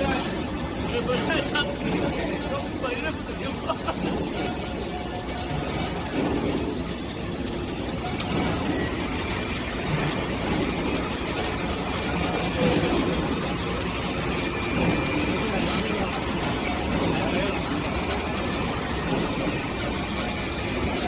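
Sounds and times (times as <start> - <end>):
machinery noise: 0.0 - 21.0.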